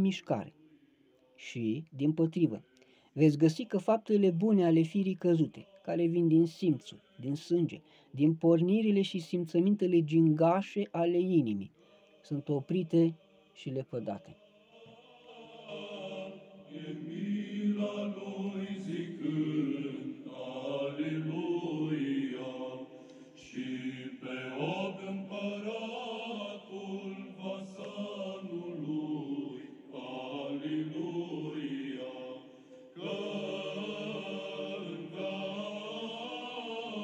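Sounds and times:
voices singing chant: 4.4s - 7.4s, 11.8s - 37.0s.

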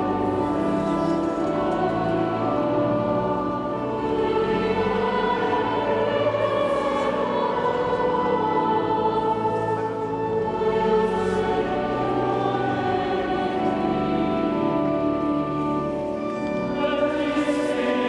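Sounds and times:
choir singing sacred music: 0.0s - 18.0s.

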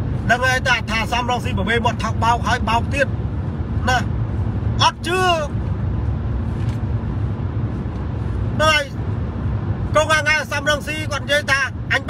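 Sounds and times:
low rumble inside car cabin: 0.0s - 12.0s.

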